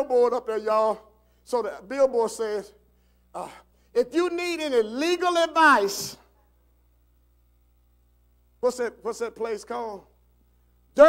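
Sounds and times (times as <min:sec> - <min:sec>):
man preaching: 0:00.0 - 0:02.8, 0:03.4 - 0:06.3, 0:08.6 - 0:10.2
faint steady hum: 0:00.0 - 0:11.0.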